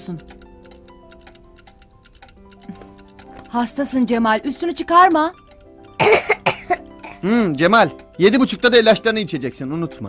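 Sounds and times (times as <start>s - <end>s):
fast clock ticking: 0.0s - 10.0s
soft background music: 0.0s - 10.0s.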